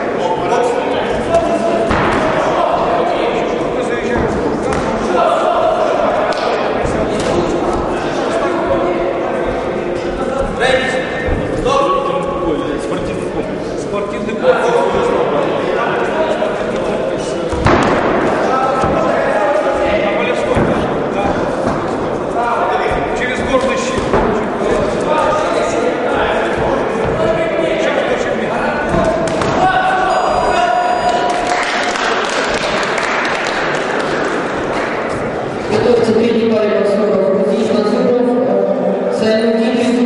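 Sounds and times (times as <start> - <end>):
sports hall crowd hubbub: 0.0 - 40.0
steady ringing tone: 29.6 - 31.9.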